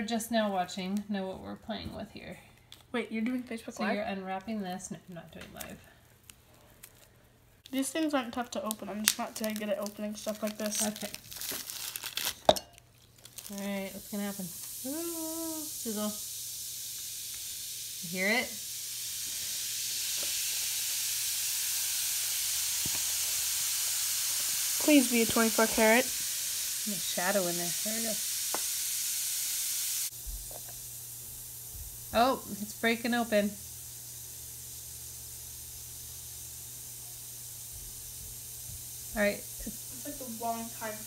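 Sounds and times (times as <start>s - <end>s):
tablet fizzing in water: 7.7s - 11.9s, 13.3s - 41.0s.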